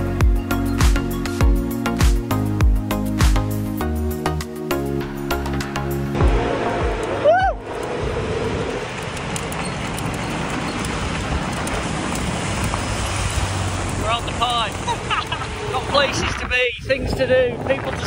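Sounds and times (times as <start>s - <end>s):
wind and road noise: 4.7s - 18.0s
short rising call: 6.2s - 9.1s.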